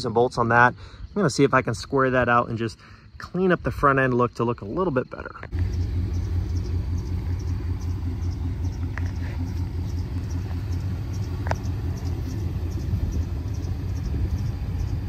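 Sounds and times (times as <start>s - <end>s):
pickup engine idling: 5.5s - 15.0s.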